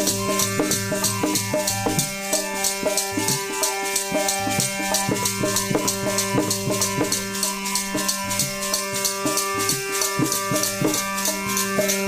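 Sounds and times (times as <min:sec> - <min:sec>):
hand drum beating: 0:00.0 - 0:12.0
harmonium chords: 0:00.0 - 0:12.0.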